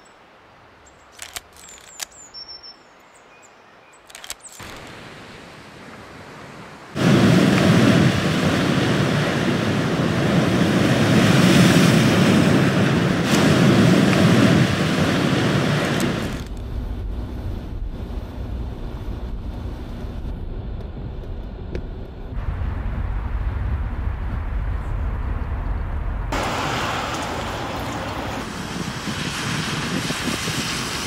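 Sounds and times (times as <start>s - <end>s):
sea waves breaking: 4.6s - 18.0s, 25.9s - 31.0s
wind on microphone: 7.0s - 31.0s
car driving on wet road: 15.8s - 31.0s.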